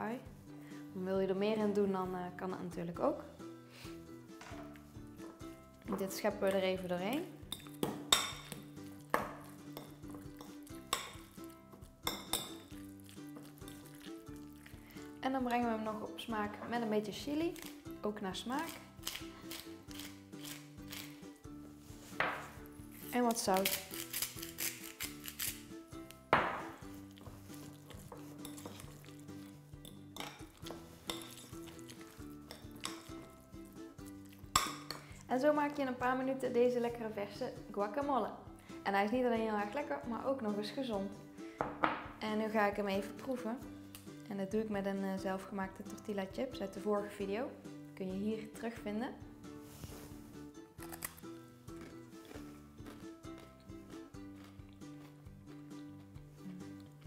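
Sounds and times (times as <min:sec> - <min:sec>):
soft background music: 0:00.0 - 0:57.0
spoon clinking on glass bowl: 0:07.5 - 0:11.3, 0:12.0 - 0:12.8, 0:29.8 - 0:30.5, 0:31.1 - 0:31.7, 0:32.5 - 0:33.1, 0:34.5 - 0:35.0
spoon scraping bowl: 0:27.0 - 0:33.4.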